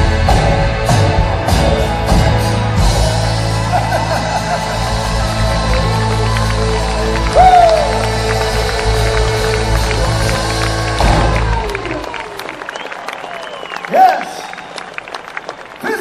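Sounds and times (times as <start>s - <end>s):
live rock band: 0.0s - 12.9s
crowd cheering and whistling: 1.9s - 16.0s.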